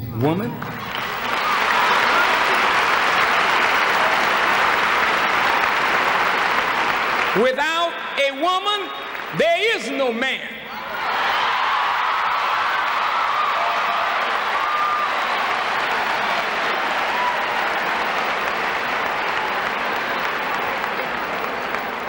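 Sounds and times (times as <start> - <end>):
audience applauding: 0.6 - 9.9, 10.8 - 22.0.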